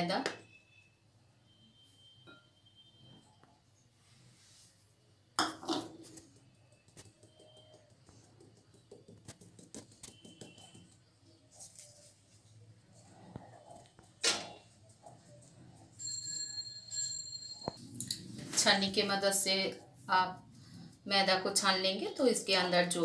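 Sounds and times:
high metallic ringing: 0:01.5 - 0:03.0, 0:16.0 - 0:18.2.

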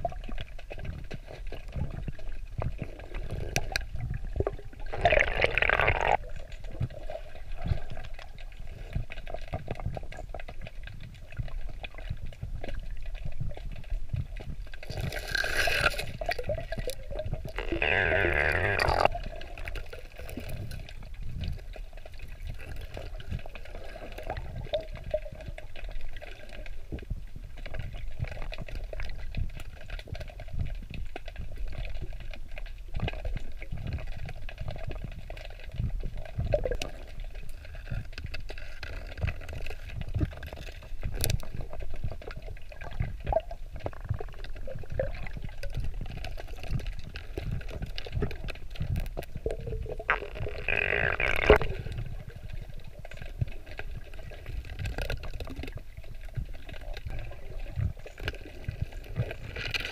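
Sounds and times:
underwater river rumble: 0:00.0 - 0:59.9.

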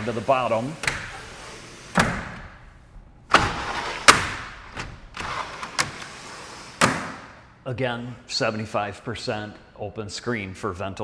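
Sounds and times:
window panels sliding in tracks: 0:00.0 - 0:07.4
sharp knocks of panels stopping: 0:03.3 - 0:05.0.

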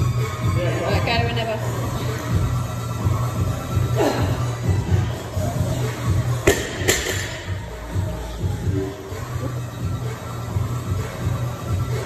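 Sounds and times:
background music with beat: 0:00.0 - 0:12.0
barbell hitting rubber floor: 0:06.4 - 0:07.4.

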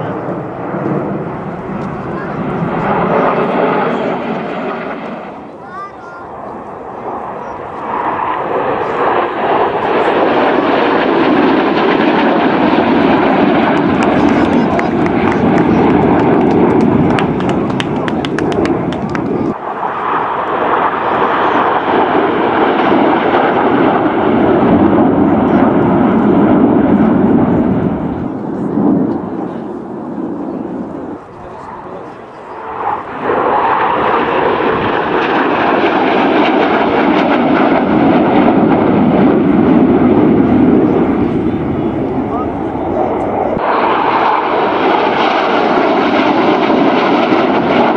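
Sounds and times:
jet engine roar: 0:00.0 - 0:47.9.

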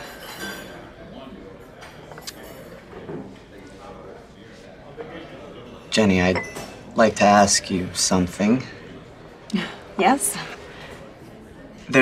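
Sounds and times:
china and cutlery clinking: 0:00.0 - 0:03.3, 0:06.2 - 0:06.9
murmur of voices: 0:00.0 - 0:12.0.

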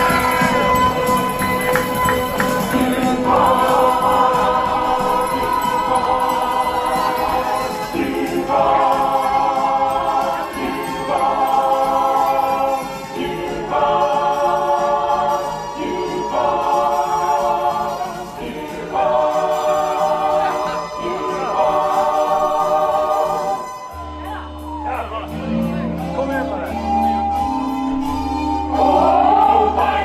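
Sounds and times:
choir singing held chords: 0:00.0 - 0:24.3, 0:27.7 - 0:30.0.

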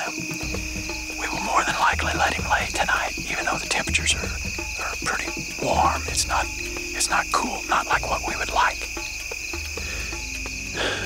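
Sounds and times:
insects chirring: 0:00.0 - 0:11.0
soft background music: 0:00.0 - 0:11.0.

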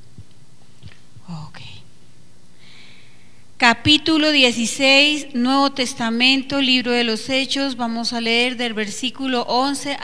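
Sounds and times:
faint sound system hum: 0:00.0 - 0:10.0
person whispering into microphone: 0:00.8 - 0:01.9.

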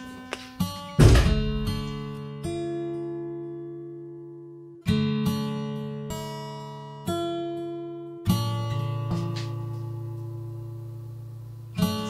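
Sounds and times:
strummed guitar chords: 0:00.0 - 0:12.0.

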